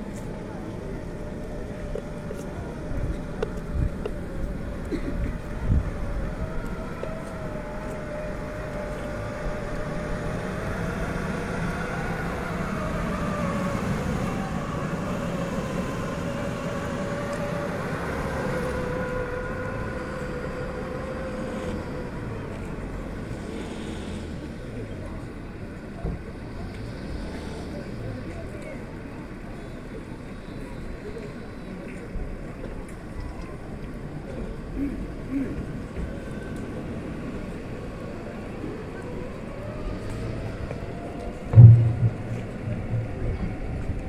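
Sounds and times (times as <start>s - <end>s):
jeep engine whining: 0.0s - 31.5s, 32.4s - 44.0s
short knock: 41.6s - 43.1s.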